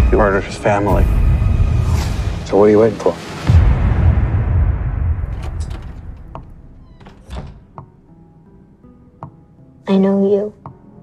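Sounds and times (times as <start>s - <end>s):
deep rumbling hit: 0.0s - 6.9s.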